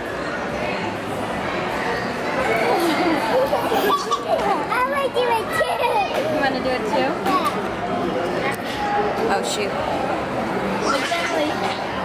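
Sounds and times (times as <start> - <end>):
toddlers babbling: 10.8 - 12.0.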